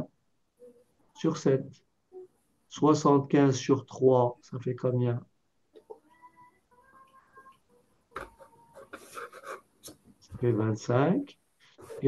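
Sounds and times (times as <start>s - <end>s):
stylus scratching on tablet: 7.0s - 10.0s, 11.6s - 12.0s.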